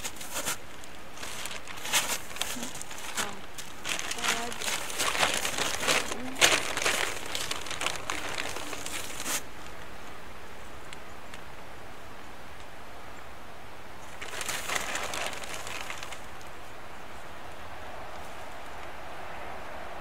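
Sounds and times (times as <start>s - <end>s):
hand scooping soil: 0.0s - 9.5s
plastic bag crinkling: 0.0s - 9.8s, 14.1s - 16.6s.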